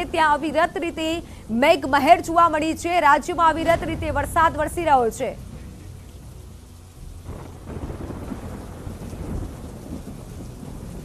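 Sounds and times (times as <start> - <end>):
heavy rain: 0.0 - 11.0
low rumbling thunder: 3.3 - 11.0.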